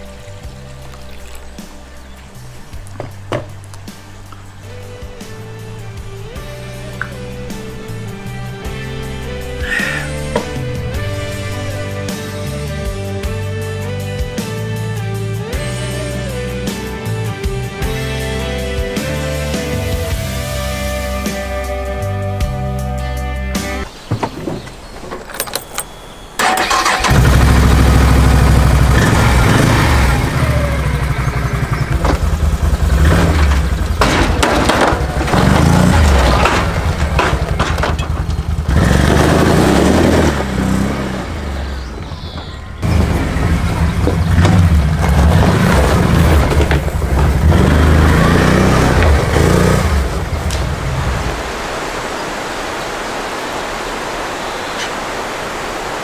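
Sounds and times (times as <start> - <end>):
atv engine cranking and revving: 25.3 - 42.0, 42.8 - 50.9.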